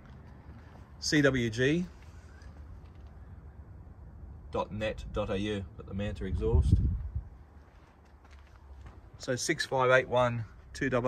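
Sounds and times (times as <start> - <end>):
footsteps on pavement: 0.0 - 1.0, 6.9 - 9.3.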